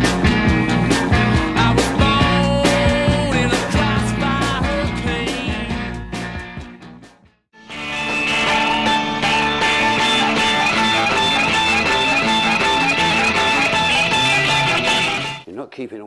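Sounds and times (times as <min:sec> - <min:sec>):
rock music with electric guitar: 0:00.0 - 0:15.4.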